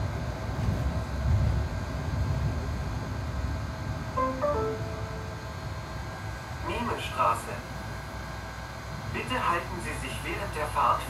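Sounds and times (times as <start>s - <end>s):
bus engine idling hum: 0.0s - 11.0s.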